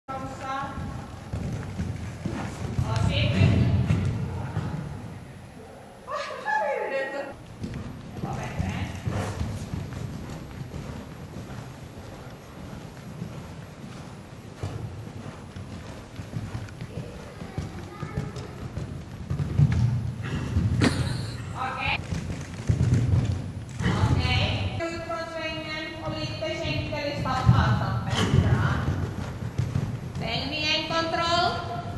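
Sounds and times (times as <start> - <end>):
horse hooves thudding on sand: 0.1 - 5.4, 7.4 - 31.9.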